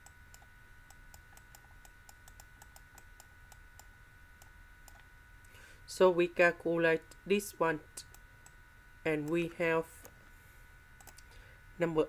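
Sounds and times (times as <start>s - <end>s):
faint electrical whine: 0.0s - 12.0s.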